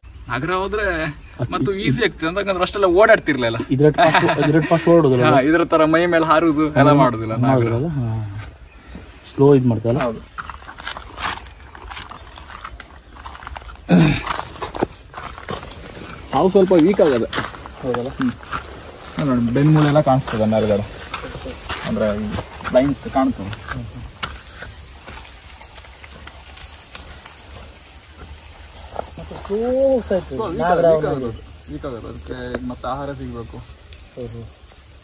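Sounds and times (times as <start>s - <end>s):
dry leaves and twigs crackling: 0.0s - 35.0s
loud voiced grunt: 13.9s - 14.3s.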